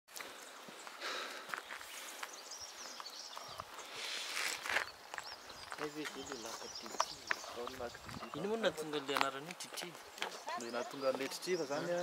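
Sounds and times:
light footsteps scuffing: 0:00.1 - 0:12.0.

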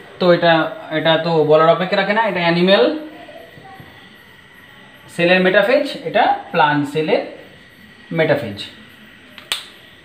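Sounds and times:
sharp click: 0:09.4 - 0:09.8.

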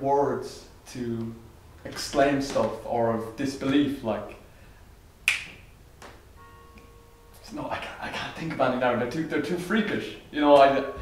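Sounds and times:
faint steady held tone: 0:03.6 - 0:05.0, 0:05.6 - 0:11.0
finger snap: 0:05.2 - 0:06.9.

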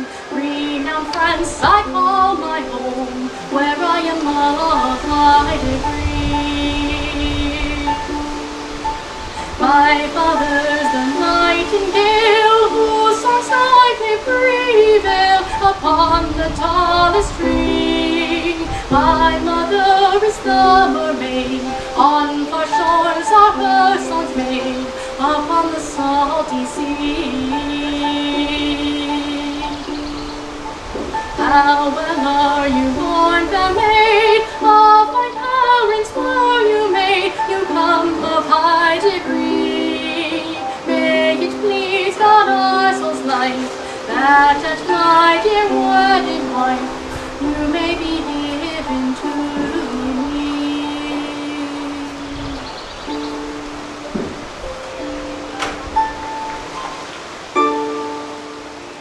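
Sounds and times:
plucked wooden harp: 0:00.0 - 0:59.0
harp plucked notes and chords: 0:53.1 - 0:59.0.

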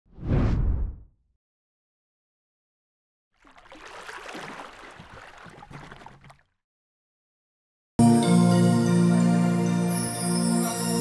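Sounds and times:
deep whoosh: 0:00.1 - 0:01.0.

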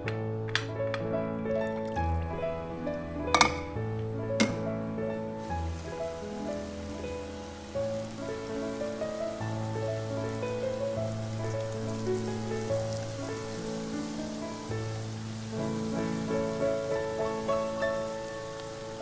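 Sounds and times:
background music sustained notes: 0:00.0 - 0:19.0
potatoes sizzling in hot oil: 0:01.4 - 0:19.0.

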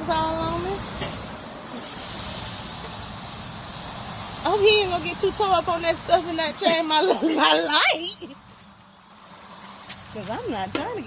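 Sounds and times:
steaks sizzling on grill: 0:00.0 - 0:11.0.

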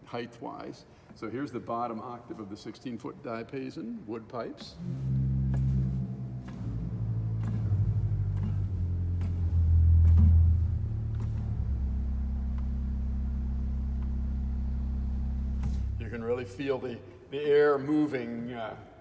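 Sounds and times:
deep pipe organ bass notes: 0:04.7 - 0:17.2.

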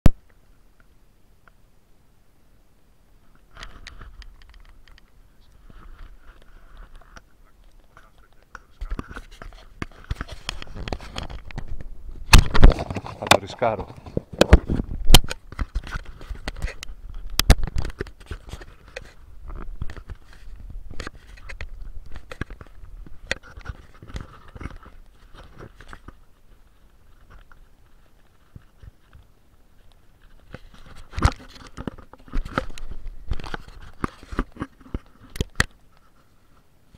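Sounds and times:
close-up crackling clicks: 0:03.3 - 0:36.1.

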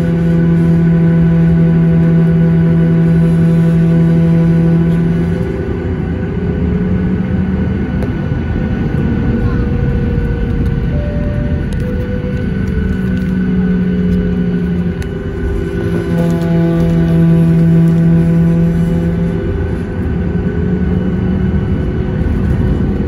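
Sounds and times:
airframe rolling rumble: 0:00.0 - 0:23.0
jet engines humming and whining: 0:00.0 - 0:23.0.

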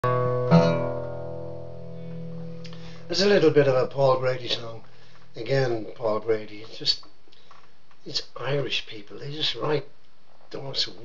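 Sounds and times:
acoustic guitar chord strummed: 0:00.0 - 0:03.1.

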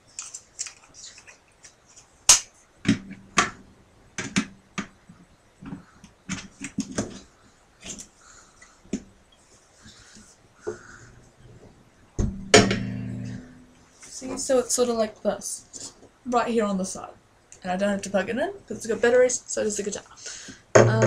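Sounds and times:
guitar body ringing low: 0:12.2 - 0:13.8.

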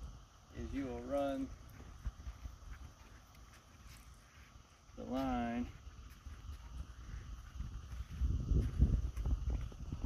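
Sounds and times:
wind buffeting microphone: 0:05.8 - 0:10.0.

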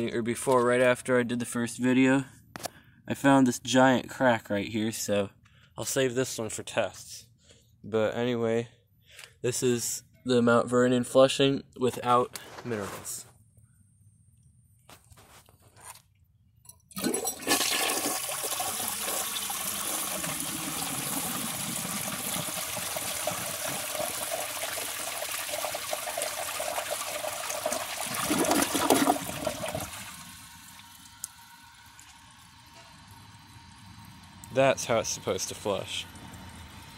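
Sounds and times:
bowl emptying gurgle: 0:16.9 - 0:32.2
toilet tank refilling: 0:16.9 - 0:33.2
toilet flushing: 0:17.0 - 0:33.2.

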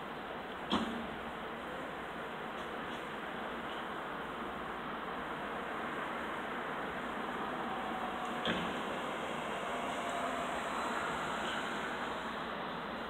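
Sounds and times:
distant city traffic hum: 0:00.0 - 0:13.0.

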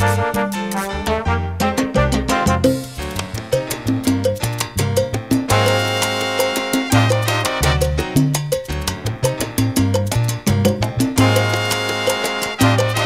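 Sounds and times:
salsa music: 0:00.0 - 0:13.0.

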